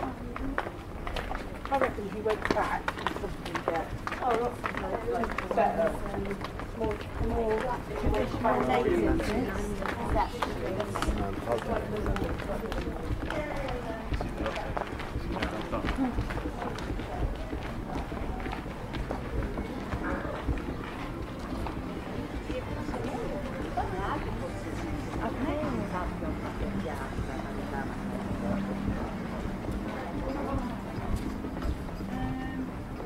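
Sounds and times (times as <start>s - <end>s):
footsteps on stone paving: 0.0s - 33.0s
people talking: 0.0s - 33.0s.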